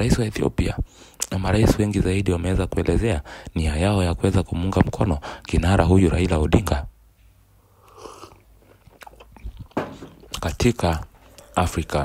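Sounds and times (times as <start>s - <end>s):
mouth clicks of lips and tongue: 1.1s - 1.4s, 7.8s - 11.7s.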